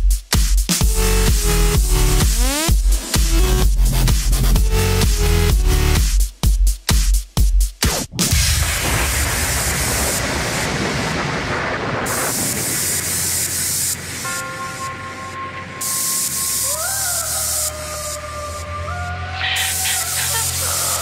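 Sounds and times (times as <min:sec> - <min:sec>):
low bass: 0:00.8 - 0:06.1
white-noise sweep: 0:08.0 - 0:18.6, 0:19.4 - 0:21.0
sustained synth line: 0:13.1 - 0:18.8.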